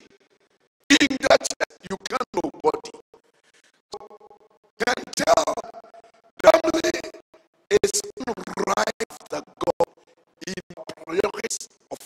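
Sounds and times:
man preaching through pa: 0.9 - 2.9, 4.8 - 5.6, 6.4 - 7.1, 7.7 - 9.8, 10.4 - 12.0.

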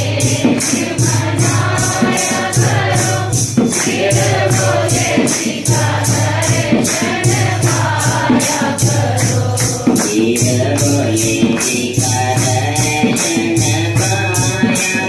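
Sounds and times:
group devotional singing: 0.0 - 15.0
jingling hand percussion: 0.0 - 15.0.

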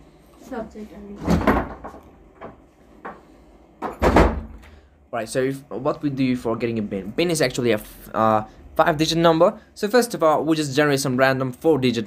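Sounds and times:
thump: 3.8 - 4.6.

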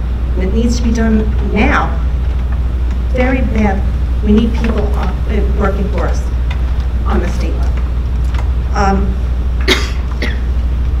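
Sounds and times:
steady low hum: 0.0 - 11.0
person coughing: 9.6 - 10.5.

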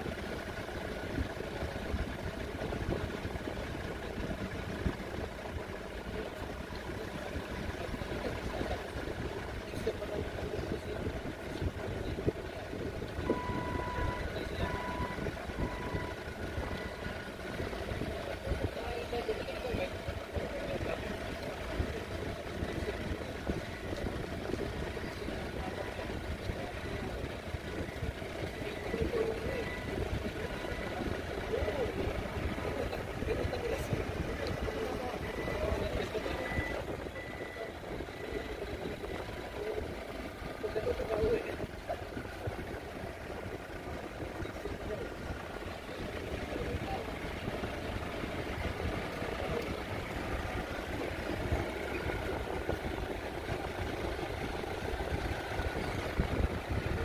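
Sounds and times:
forklift engines running: 0.0 - 57.0
voices: 0.0 - 57.0
reversing alarm beeping: 13.2 - 17.8, 27.8 - 32.9, 34.7 - 39.8.

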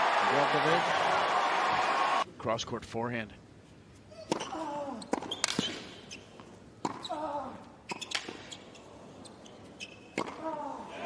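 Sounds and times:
rackets striking tennis ball: 5.1 - 6.0, 10.2 - 10.5
tennis ball bouncing: 5.1 - 7.1, 10.1 - 10.4.

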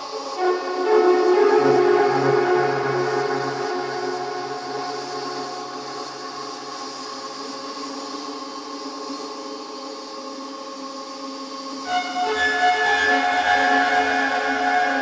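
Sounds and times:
sustained synth chords: 0.1 - 7.6.

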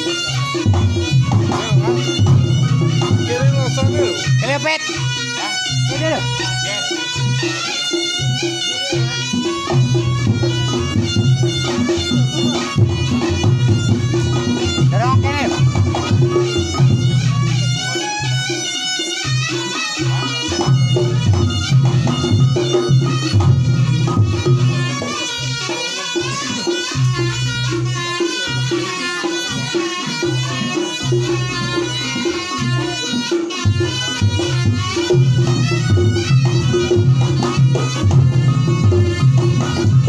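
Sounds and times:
barrel drum beats: 0.0 - 40.0
light percussion: 0.0 - 40.0
wavering reed melody: 0.0 - 40.0.

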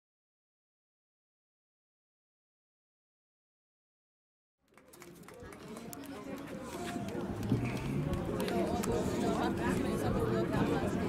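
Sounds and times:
people talking outdoors: 4.6 - 11.0.

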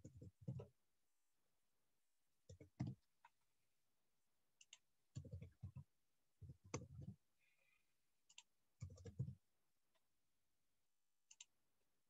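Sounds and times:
faint keyboard typing: 0.0 - 0.8, 2.4 - 3.4, 4.6 - 10.1, 11.2 - 11.6.

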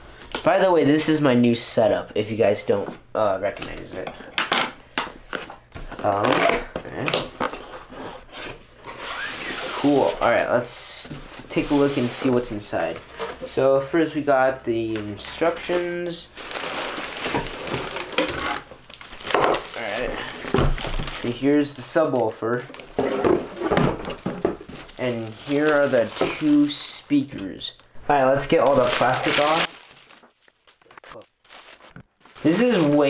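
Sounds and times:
cardboard scraping: 7.5 - 10.2, 22.7 - 26.7
plastic wrapping crinkling: 14.9 - 33.0.

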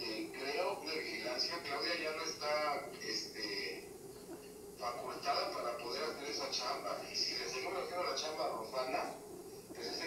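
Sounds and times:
man talking through a speaker: 0.0 - 3.9, 4.8 - 10.0.

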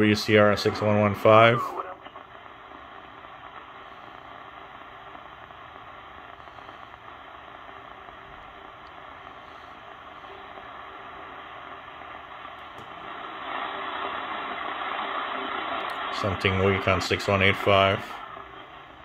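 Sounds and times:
radio static and hiss: 0.0 - 19.0.

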